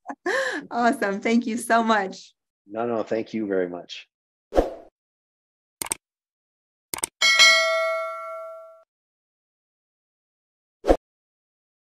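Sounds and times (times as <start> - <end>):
bell-like notification ding: 7.2 - 8.8.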